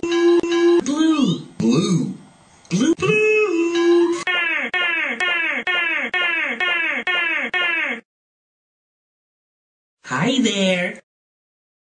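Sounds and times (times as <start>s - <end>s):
cartoon voice wailing: 3.0s - 8.1s.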